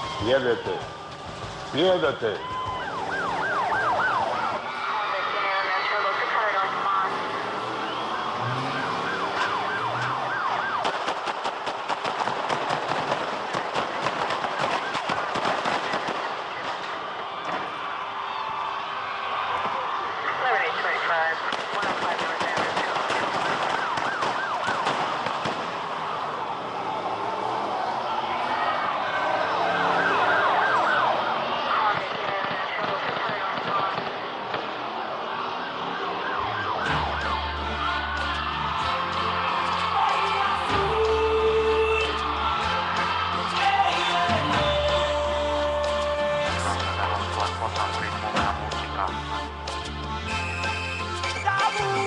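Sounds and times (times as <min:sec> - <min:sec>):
police sirens wailing: 0:00.0 - 0:52.0
siren yelping and wailing: 0:02.2 - 0:11.0, 0:23.2 - 0:33.6, 0:35.1 - 0:38.3
rapid gunshots: 0:10.8 - 0:17.0, 0:21.5 - 0:25.8.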